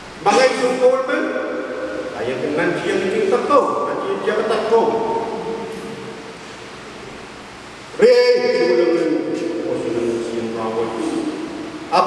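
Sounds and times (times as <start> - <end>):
room noise hiss: 0.0 - 12.0
man speaking over loudspeaker: 0.2 - 6.2, 7.9 - 12.0.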